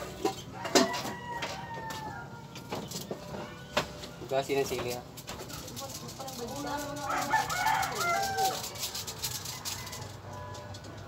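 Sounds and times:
rooster crowing: 0.4s - 2.6s, 6.8s - 11.0s.

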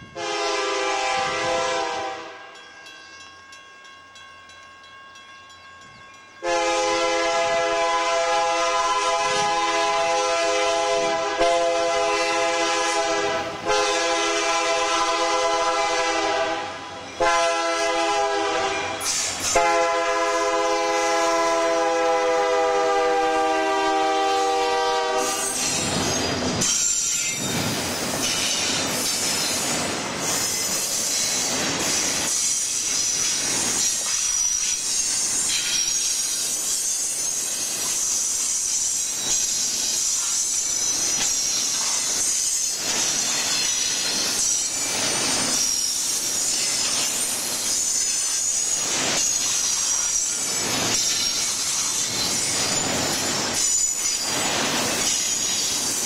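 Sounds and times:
train rumble: 0.0s - 56.0s
locomotive air horn blasts: 0.1s - 2.5s, 6.4s - 25.6s
train wheel clatter: 18.1s - 21.7s, 25.2s - 56.0s.

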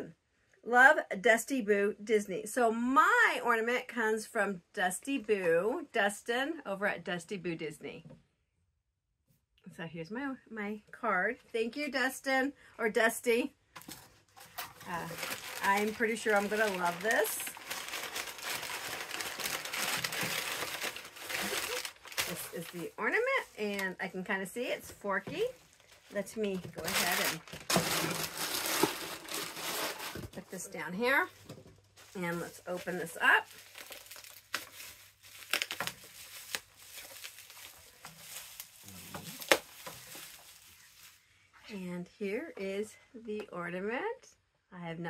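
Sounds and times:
tissue paper crinkling: 13.9s - 24.0s, 25.4s - 30.6s, 32.0s - 41.3s.

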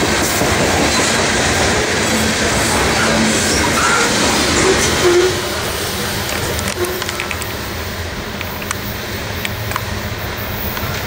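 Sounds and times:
train wheels clattering on rails: 0.0s - 11.0s.

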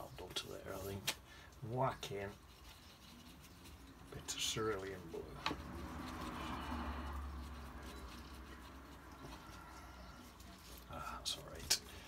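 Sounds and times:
paint brush rubbing on paper: 1.9s - 12.0s.

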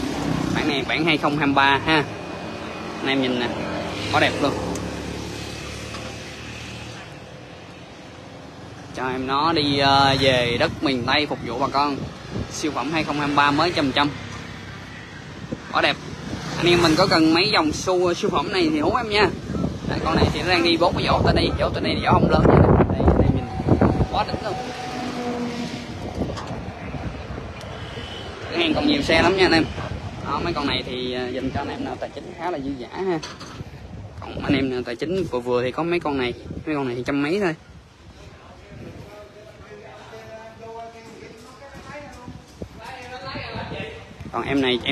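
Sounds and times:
outdoor background noise: 0.0s - 44.9s.

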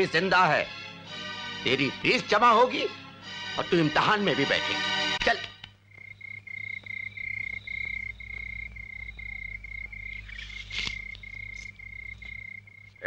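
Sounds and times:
cricket chirping: 5.3s - 13.0s
faint low hum: 5.6s - 13.0s.

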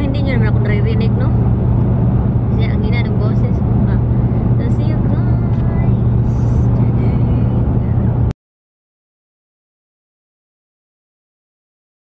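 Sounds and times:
road and engine noise in car: 0.0s - 8.4s.

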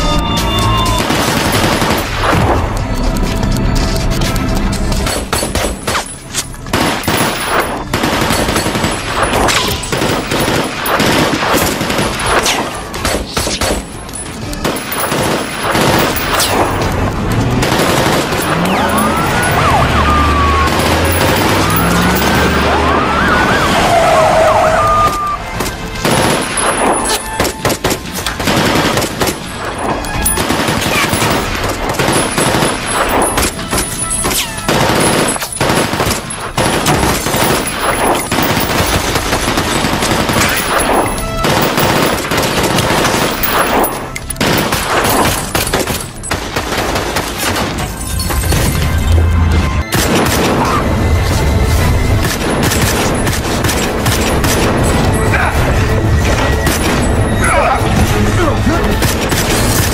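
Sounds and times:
pistol shots: 0.9s - 2.7s, 5.0s - 19.4s, 20.5s - 22.7s, 25.6s - 49.0s, 49.8s - 50.8s, 52.2s - 55.2s, 58.9s - 59.9s
rapid automatic gunfire: 0.9s - 2.8s, 6.7s - 13.8s, 14.6s - 19.6s, 20.5s - 22.8s, 26.0s - 48.0s.

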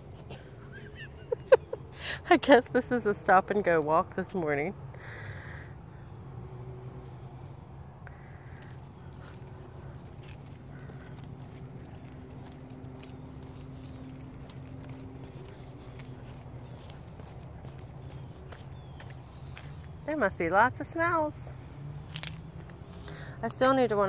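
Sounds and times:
leash clip jingling: 8.6s - 24.0s.

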